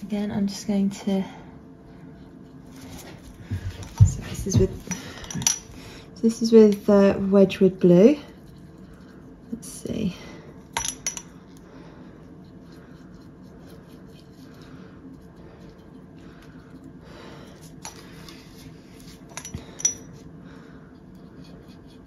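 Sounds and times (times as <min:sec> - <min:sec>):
faint steady hum: 0:00.0 - 0:22.0
paintbrush working dye: 0:01.6 - 0:04.9, 0:06.6 - 0:10.7, 0:11.3 - 0:19.4, 0:20.0 - 0:22.0.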